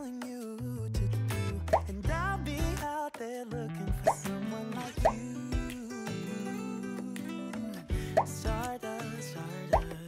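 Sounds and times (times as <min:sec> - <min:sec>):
pop song with beat and bass: 0:00.0 - 0:10.0.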